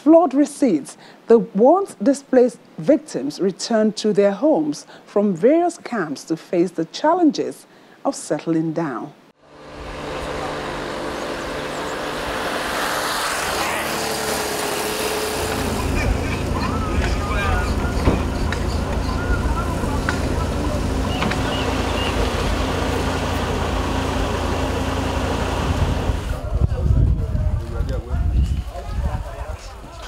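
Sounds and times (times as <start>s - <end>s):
vehicle passing: 9.4s - 26.5s.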